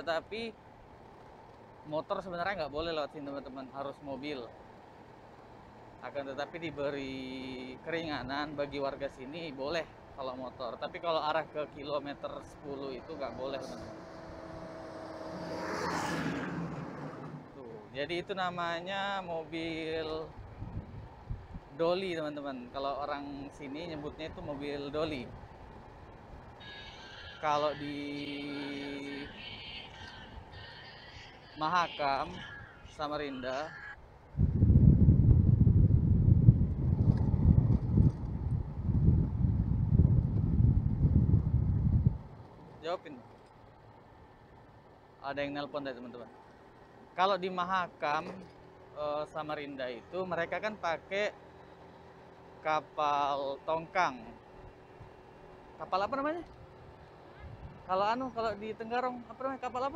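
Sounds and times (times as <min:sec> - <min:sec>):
humming engine: 0:06.4 - 0:59.9
truck passing by: 0:08.7 - 0:17.9
wind buffeting microphone: 0:20.3 - 0:21.8, 0:34.3 - 0:42.5.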